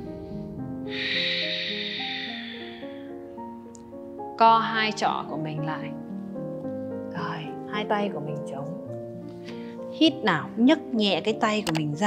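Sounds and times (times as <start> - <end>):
breathy exhale through mouth: 0.0 - 3.5
soft piano music: 0.0 - 12.0.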